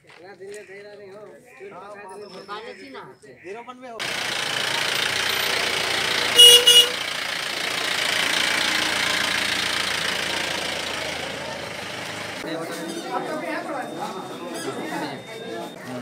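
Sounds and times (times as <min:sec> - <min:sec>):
outdoor street noise: 0:00.0 - 0:16.0
vehicle horn honks: 0:06.2 - 0:07.1.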